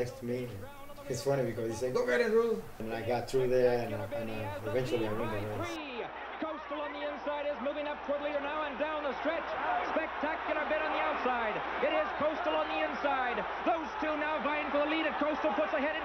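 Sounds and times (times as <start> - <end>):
race caller rapid speech: 0.0 - 16.0.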